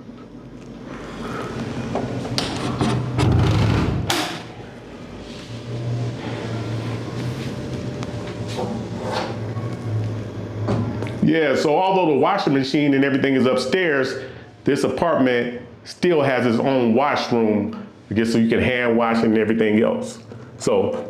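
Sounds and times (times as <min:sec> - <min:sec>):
door knocks and rattles: 0:02.8 - 0:04.4.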